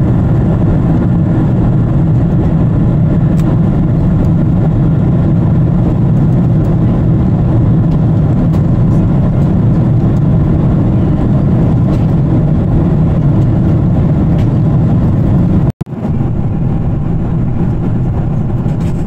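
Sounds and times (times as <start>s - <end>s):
air rushing past fuselage: 0.0s - 19.0s
jet engines roaring: 0.0s - 19.0s.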